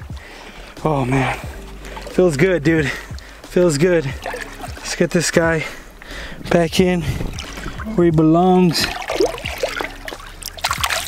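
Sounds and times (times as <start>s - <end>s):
fish splashing in water: 0.2s - 11.0s.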